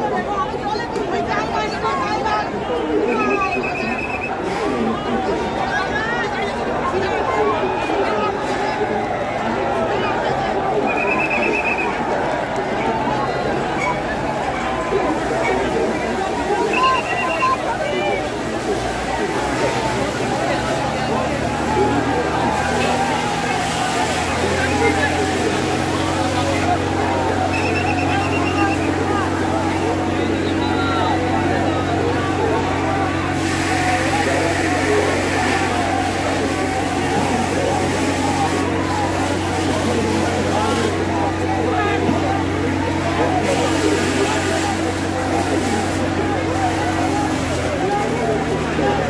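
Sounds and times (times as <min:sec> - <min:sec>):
crowd shouting and chattering: 0:00.0 - 0:49.0
truck engine and pump humming: 0:00.0 - 0:49.0
high-pressure water jets hissing: 0:14.9 - 0:49.0.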